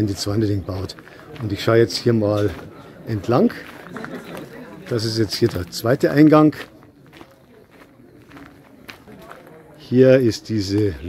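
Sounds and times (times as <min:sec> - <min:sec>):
footsteps on gravel: 0:00.8 - 0:09.9.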